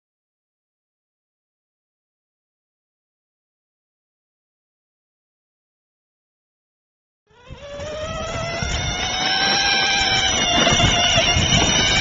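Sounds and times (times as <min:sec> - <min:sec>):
electric toy car motor whining: 0:07.3 - 0:12.0.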